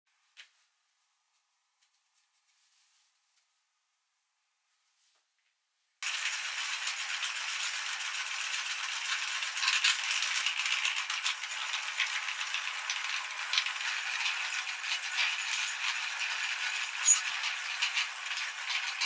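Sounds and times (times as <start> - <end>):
metal meat grinder rattling: 6.0 - 19.0.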